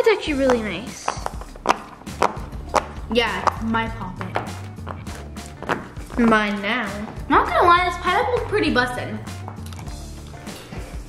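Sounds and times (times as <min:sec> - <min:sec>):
background music: 0:00.0 - 0:11.0
pop-it toy bubbles popping: 0:00.4 - 0:05.0.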